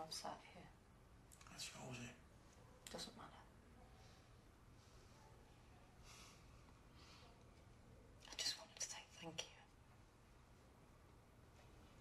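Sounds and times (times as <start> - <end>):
woman whispering: 8.2 - 9.8.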